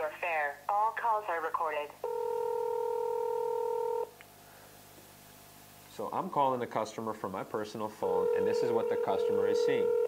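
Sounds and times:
telephone ringback tone: 2.0s - 4.1s, 8.1s - 10.0s.

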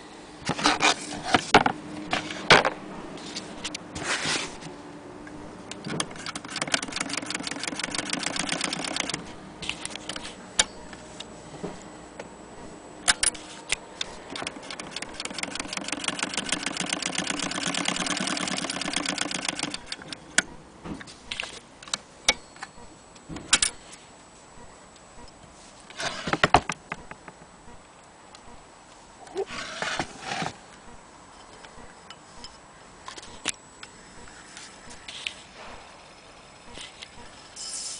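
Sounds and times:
sewing machine clatter: 6.1s - 9.2s, 14.4s - 20.0s.

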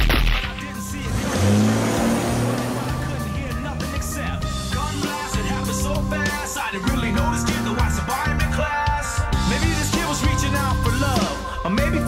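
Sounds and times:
background music: 0.0s - 12.0s
car engine revving: 0.3s - 8.4s.

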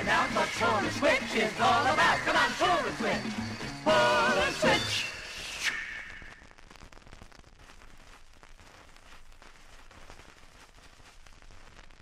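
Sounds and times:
vinyl record hiss and crackle: 0.0s - 12.0s.

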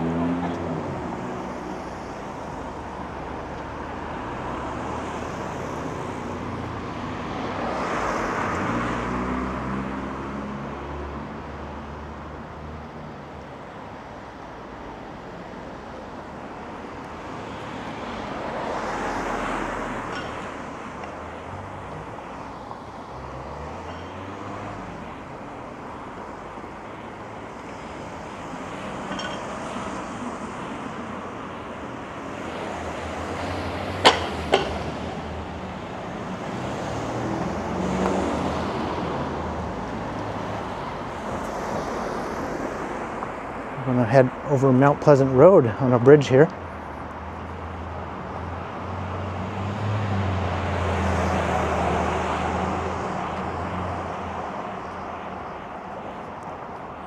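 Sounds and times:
cars driving past: 0.0s - 57.0s
traffic hum: 0.0s - 57.0s.

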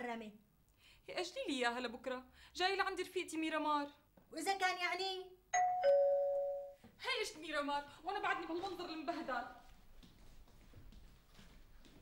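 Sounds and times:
two-note doorbell chime: 5.6s - 6.8s.

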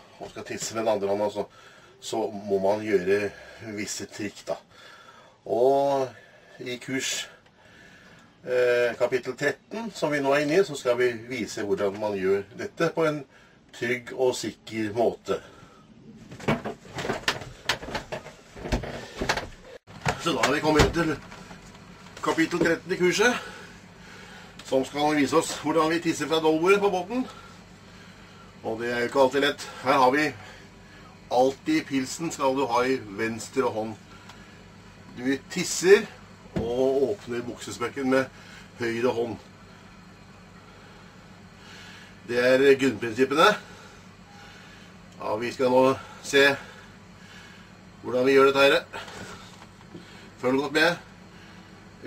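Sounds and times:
low hum: 4.7s - 52.0s.

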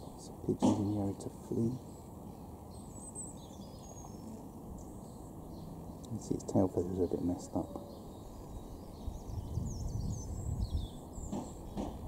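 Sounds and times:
low outdoor background noise: 0.0s - 12.0s
faint high bird chirps: 1.8s - 12.0s.

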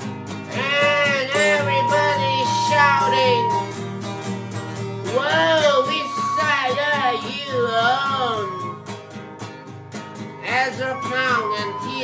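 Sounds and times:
acoustic guitar: 0.0s - 12.0s
throat singing: 0.5s - 3.8s, 5.1s - 8.8s, 10.4s - 12.0s.

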